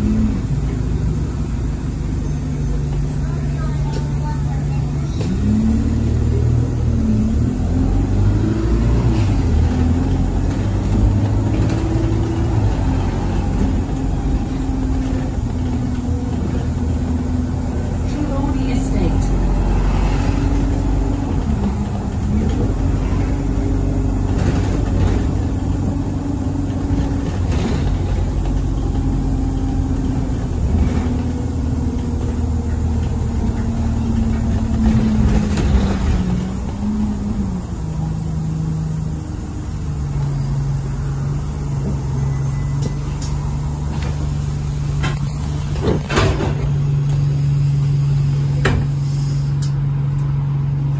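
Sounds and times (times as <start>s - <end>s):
bus diesel engine: 0.0s - 50.9s.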